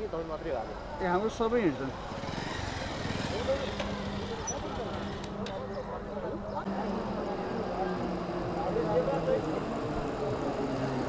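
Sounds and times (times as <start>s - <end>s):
truck engine running: 1.5s - 11.0s
people talking: 3.2s - 11.0s.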